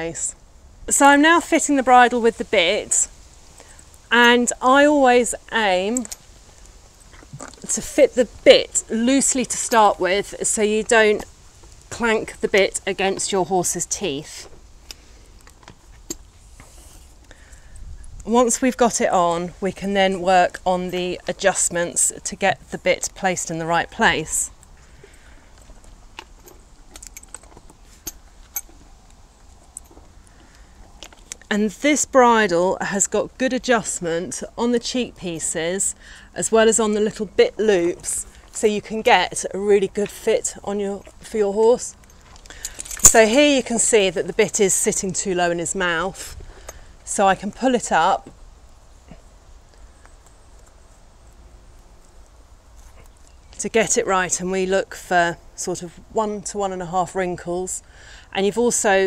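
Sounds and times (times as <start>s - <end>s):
metallic clinks of bridle bit: 25.6s - 28.8s, 41.9s - 43.4s.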